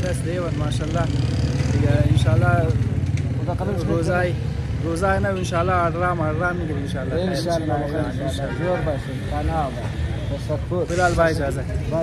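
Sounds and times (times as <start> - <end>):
men talking: 0.0 - 12.0
street traffic rumble: 0.0 - 12.0.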